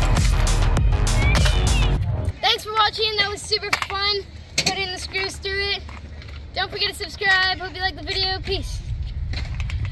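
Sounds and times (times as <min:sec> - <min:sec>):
boy talking: 0:02.4 - 0:08.9.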